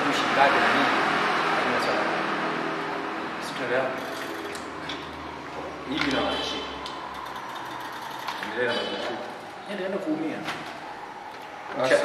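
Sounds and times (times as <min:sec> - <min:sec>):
man talking: 0:05.8 - 0:06.7, 0:08.4 - 0:10.5.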